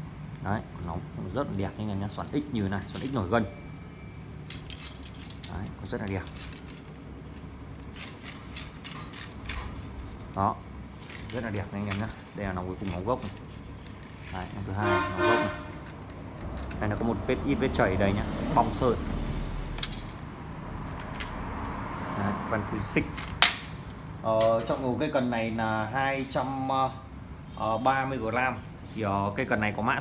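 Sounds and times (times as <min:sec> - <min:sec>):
low background hum: 0:00.0 - 0:30.0
hands rubbing fishing rod: 0:11.0 - 0:14.8.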